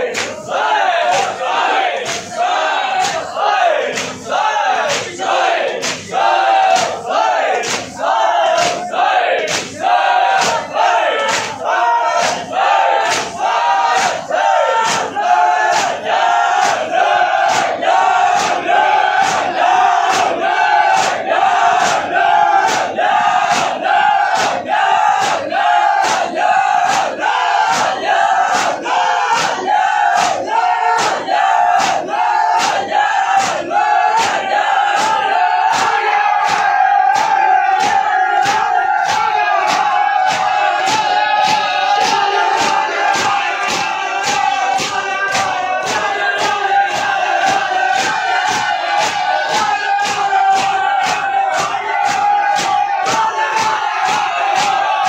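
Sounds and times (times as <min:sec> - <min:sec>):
men chanting together: 0:00.0 - 0:55.0
hands striking chests in unison: 0:00.1 - 0:55.0.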